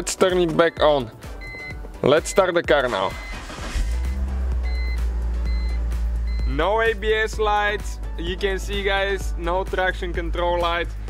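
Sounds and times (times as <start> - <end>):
car engine starting and idling: 1.2 - 9.4.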